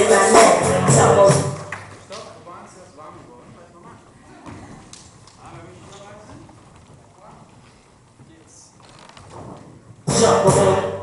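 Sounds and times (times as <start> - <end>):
footsteps on wooden floor: 5.5 - 10.0.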